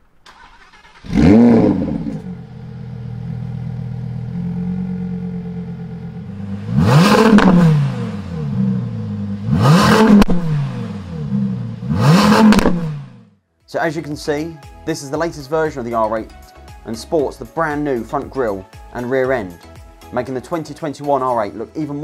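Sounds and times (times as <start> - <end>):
exhaust crack: 0.0 - 13.3
car engine starting and revving: 0.2 - 13.4
engine idling: 0.7 - 11.9.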